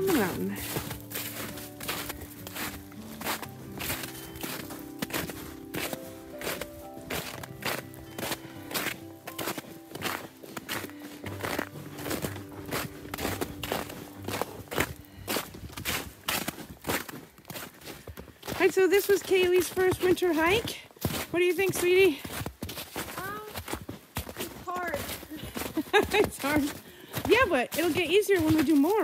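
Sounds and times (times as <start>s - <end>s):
background music with held notes: 0.0s - 16.3s
footsteps in snow: 0.0s - 29.0s.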